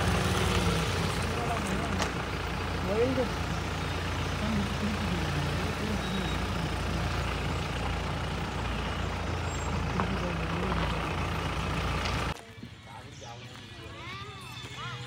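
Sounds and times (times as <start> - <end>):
indistinct voices: 0.0 - 15.0
vehicle engine idling: 0.0 - 15.0.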